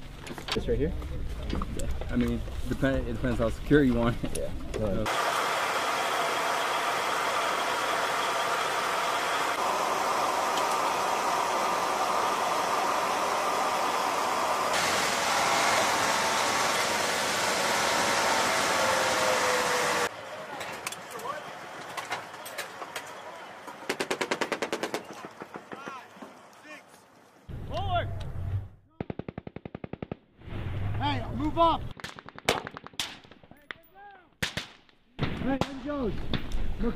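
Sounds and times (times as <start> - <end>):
armoured vehicle running noise: 0.1 - 26.6
voices: 18.6 - 28.2
machine-gun bursts: 23.9 - 25.7
gunshots: 23.9 - 25.9.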